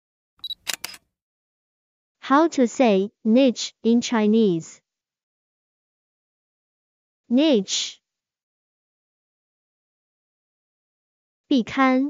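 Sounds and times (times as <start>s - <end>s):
sharp clicks: 0.4s - 1.0s.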